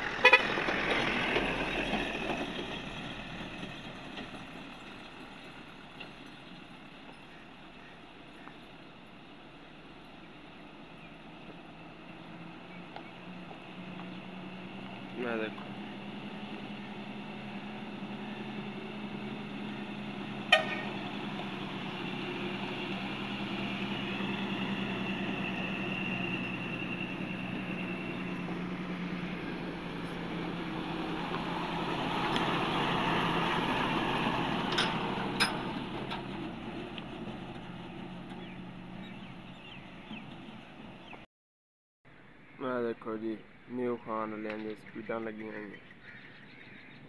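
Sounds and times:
tyres on gravel: 0.0 - 9.2, 11.0 - 41.2
diesel truck engine drone: 0.0 - 41.3.

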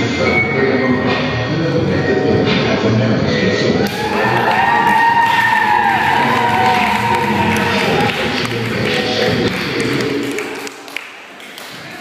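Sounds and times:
hip-hop dance music: 0.0 - 12.0.

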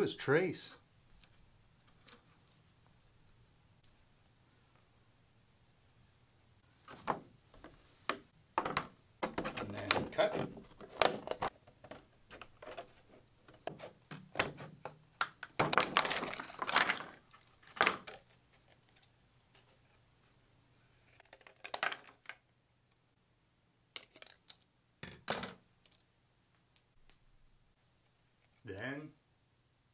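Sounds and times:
plastic crinkling: 15.5 - 19.0.

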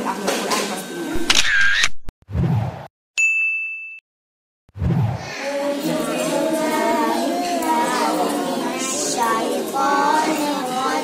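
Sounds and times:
bell-like ding: 3.2 - 4.0.

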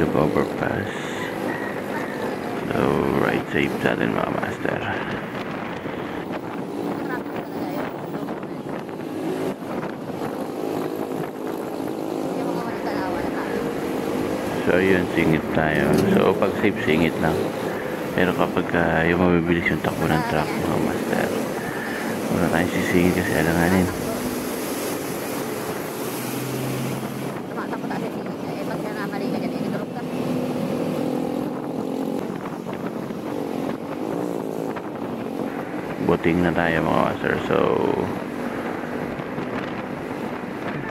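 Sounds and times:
wind buffeting microphone: 0.7 - 40.9
wind noise on microphone: 4.8 - 12.6, 30.4 - 36.1, 38.0 - 40.9.

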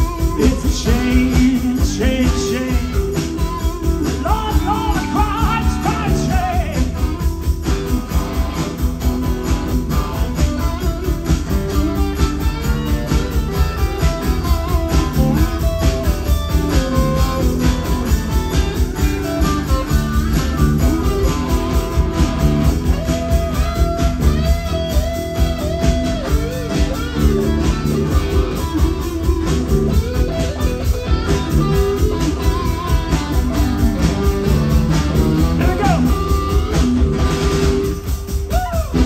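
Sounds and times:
electric lead guitar: 0.0 - 39.0
roots-rock band playing: 0.0 - 39.0.

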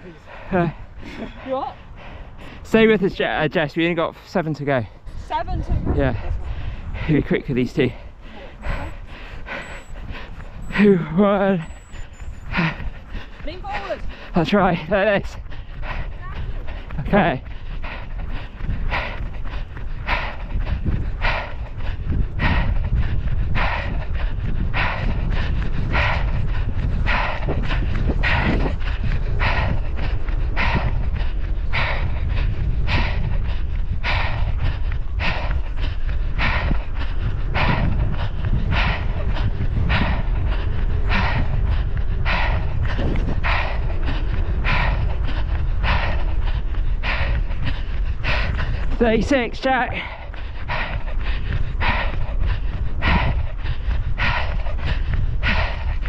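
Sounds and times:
runner panting heavily: 0.0 - 56.0
steady low rumble: 0.0 - 56.0.

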